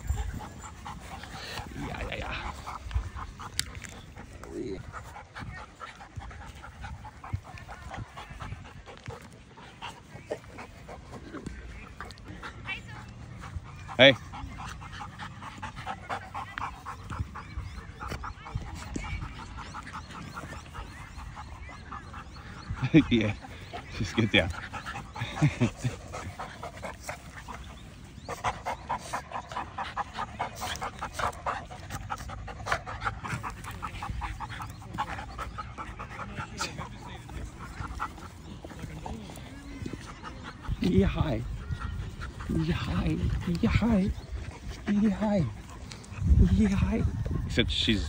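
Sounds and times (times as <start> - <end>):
dogs scuffling and breathing: 0.0 - 48.0.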